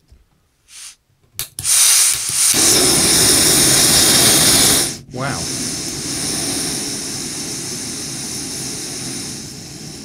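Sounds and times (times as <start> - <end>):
gas hissing from burner: 0.7 - 10.0
burner flame roar: 1.7 - 10.0.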